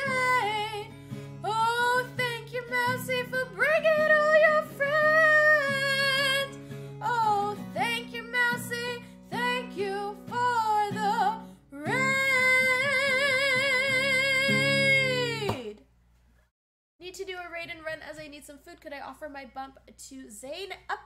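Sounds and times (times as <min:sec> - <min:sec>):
woman singing: 0:00.0 - 0:15.8.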